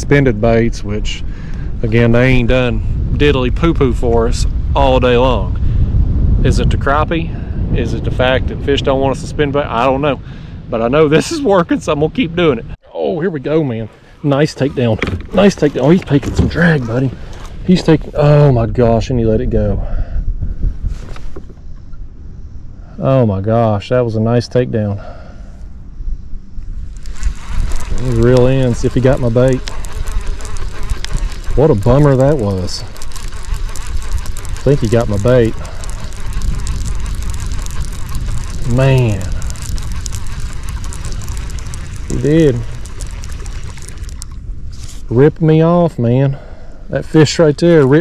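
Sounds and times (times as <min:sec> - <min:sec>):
wind rumbling on microphone: 0:00.0 - 0:48.0
water lapping against kayak hull: 0:13.6 - 0:18.2, 0:26.8 - 0:45.2
faint clicks: 0:27.0 - 0:44.9.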